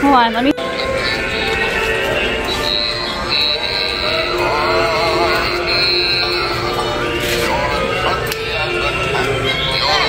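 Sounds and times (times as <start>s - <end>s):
toy playing a song with singing: 0.6s - 10.0s.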